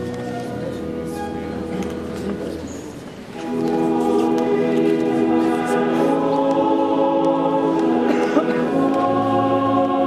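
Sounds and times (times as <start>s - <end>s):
choir singing a hymn: 3.4s - 10.0s.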